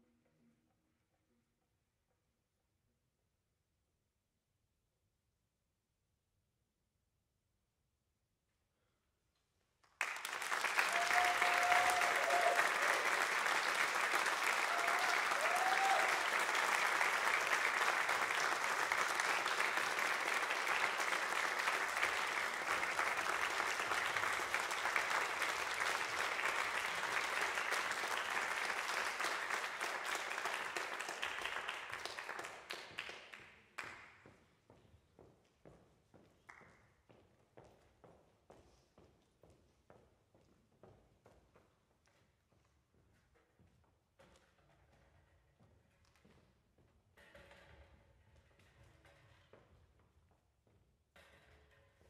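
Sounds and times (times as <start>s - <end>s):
audience applause: 10.0s - 34.0s
high calls from audience: 10.5s - 31.0s.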